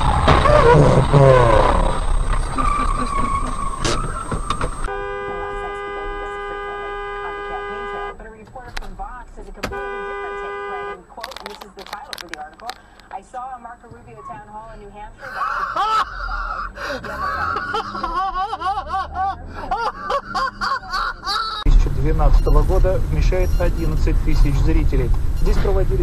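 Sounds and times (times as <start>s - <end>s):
car noise: 0.0s - 26.0s
voices: 0.0s - 26.0s
car horn blasts: 3.8s - 8.4s, 9.6s - 11.2s, 21.6s - 24.7s, 25.3s - 26.0s.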